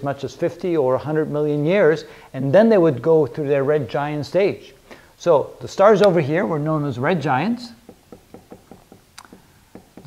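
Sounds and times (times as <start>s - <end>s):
marker tapping on whiteboard: 7.8s - 10.0s.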